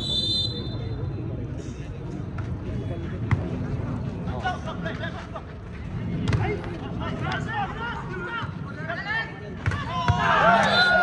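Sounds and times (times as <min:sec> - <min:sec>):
referee's whistle: 0:00.0 - 0:00.9, 0:10.4 - 0:11.0
murmur of crowd chatter: 0:00.0 - 0:11.0.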